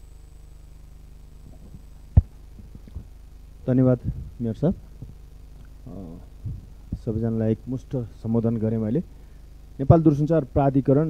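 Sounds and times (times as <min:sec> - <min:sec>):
low electrical hum: 0:00.0 - 0:11.0
microphone being bumped: 0:01.4 - 0:03.2, 0:04.0 - 0:05.2, 0:06.4 - 0:07.4.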